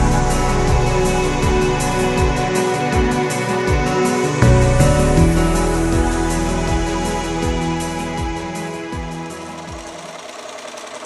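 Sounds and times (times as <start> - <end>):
background music: 0.0 - 11.0
sewing machine stitching: 9.3 - 11.0.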